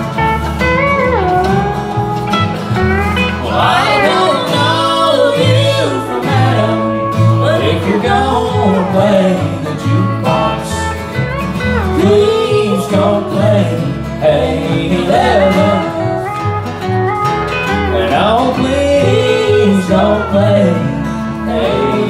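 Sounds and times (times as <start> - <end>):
acoustic guitar strumming: 0.0 - 22.0
upright bass: 0.0 - 22.0.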